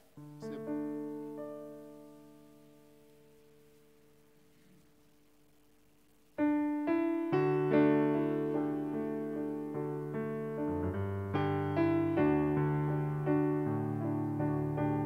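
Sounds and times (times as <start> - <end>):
piano playing chords and melody: 0.0 - 4.1, 6.4 - 15.0.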